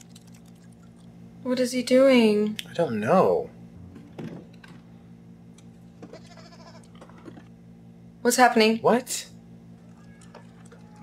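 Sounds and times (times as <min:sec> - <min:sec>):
donkey braying: 0:09.8 - 0:11.0.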